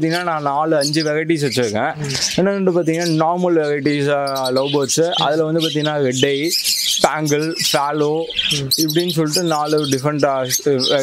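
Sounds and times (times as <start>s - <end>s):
budgerigars chirping: 0.0s - 11.0s
man talking: 0.0s - 11.0s.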